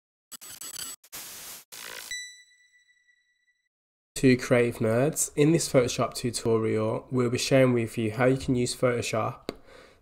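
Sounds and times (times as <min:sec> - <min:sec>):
static-like glitch noise: 0:00.3 - 0:02.2.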